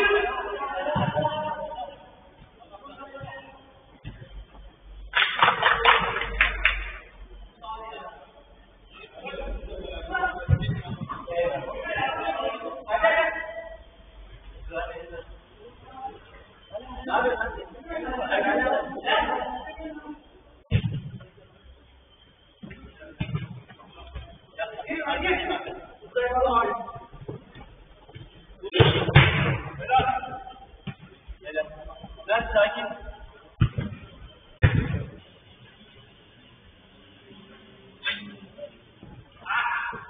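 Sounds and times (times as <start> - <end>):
football kick thumps: 20.7 - 21.2, 27.2 - 30.1, 33.6 - 35.2
harsh distorted shout: 39.4 - 40.0.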